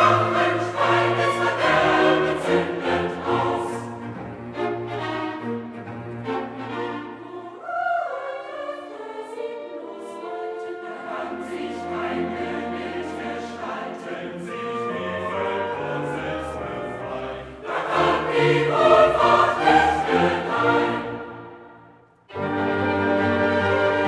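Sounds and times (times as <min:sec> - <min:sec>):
choir singing with orchestra: 0:00.0 - 0:24.0.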